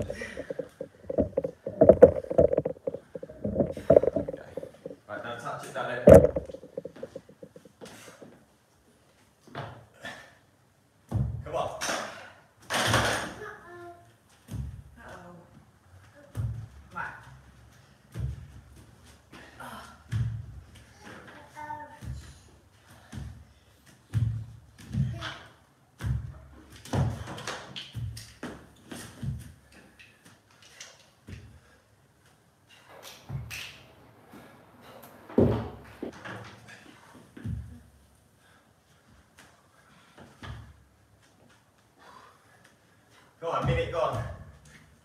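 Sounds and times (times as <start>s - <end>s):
dumbbells thudding on wooden floor: 0.0s - 5.0s, 6.1s - 7.6s, 35.3s - 36.1s.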